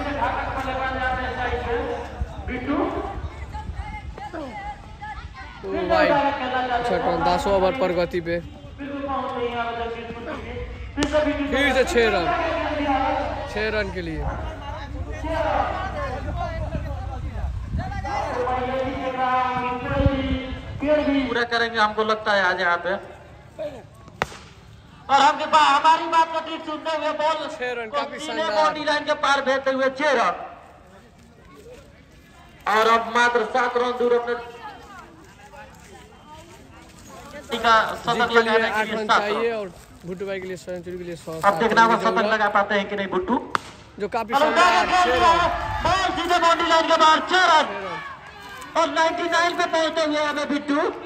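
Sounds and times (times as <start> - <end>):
men shouting excitedly: 0.0 - 8.0, 8.9 - 22.8, 25.0 - 30.6, 44.1 - 51.0
cricket bat hitting ball: 24.2 - 24.5, 43.5 - 43.8.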